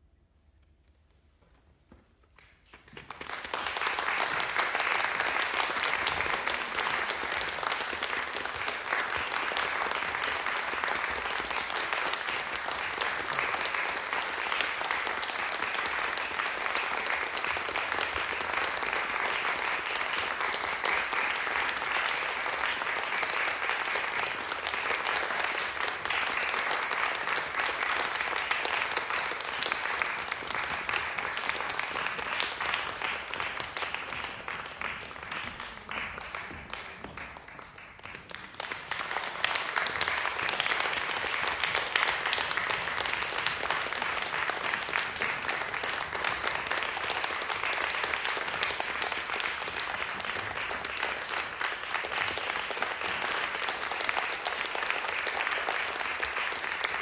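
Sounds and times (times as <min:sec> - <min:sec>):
audience applauding: 0:02.4 - 0:57.0.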